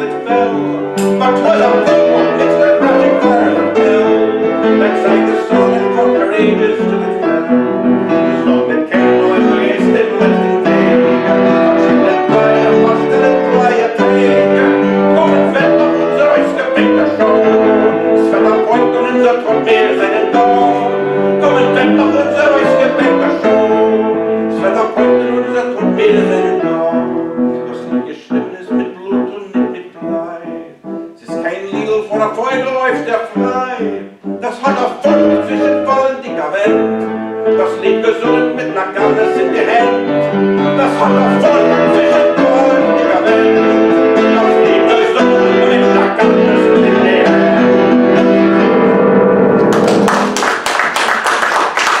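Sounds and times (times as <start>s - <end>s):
person singing: 0.0s - 50.1s
grand piano chords: 0.0s - 52.0s
audience applause: 49.6s - 52.0s.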